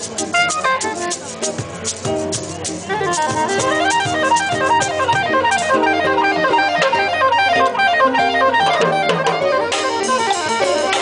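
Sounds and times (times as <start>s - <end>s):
hand percussion hits: 0.0s - 11.0s
acoustic guitar plucked runs: 0.1s - 11.0s
saxophone: 0.1s - 11.0s.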